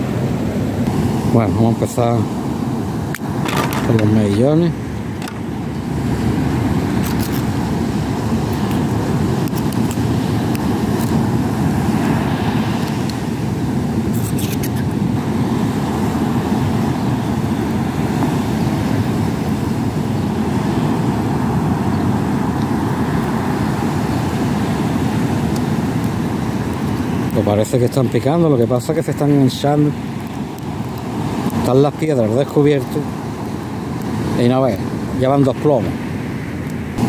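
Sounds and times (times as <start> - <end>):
rough sea breaking on beach: 0.0 - 37.0
wind: 0.0 - 37.0.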